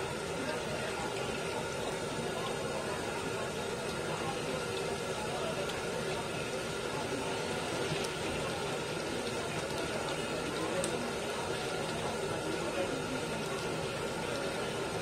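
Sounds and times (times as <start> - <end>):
vegetable slices deep-frying in oil: 0.0 - 15.0.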